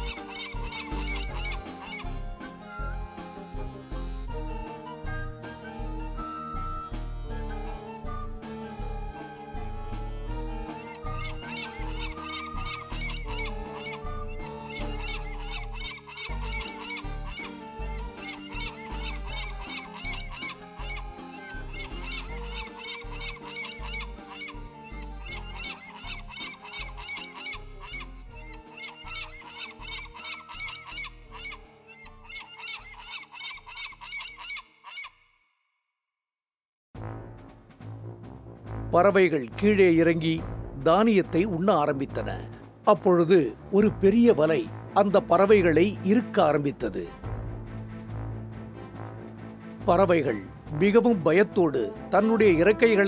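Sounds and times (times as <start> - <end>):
cartoon bird calls: 0.0 - 2.9, 10.3 - 35.6
background music with bass: 0.0 - 31.6, 37.0 - 53.0.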